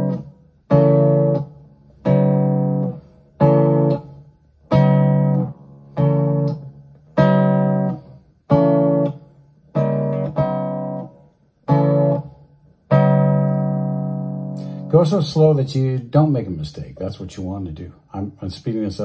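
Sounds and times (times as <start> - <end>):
acoustic guitar chords strummed: 0.0 - 15.7.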